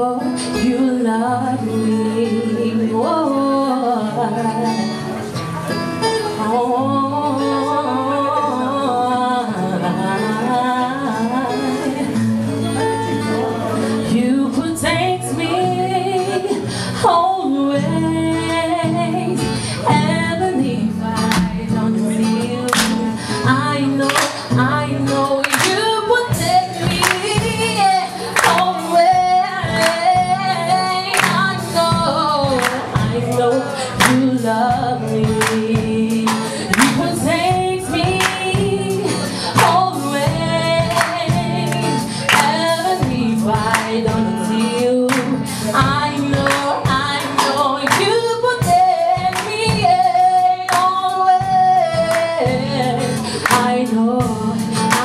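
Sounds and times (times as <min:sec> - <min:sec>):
woman singing gospel song: 0:00.0 - 0:05.0, 0:06.4 - 0:12.3, 0:14.0 - 0:55.0
acoustic guitar: 0:00.0 - 0:55.0.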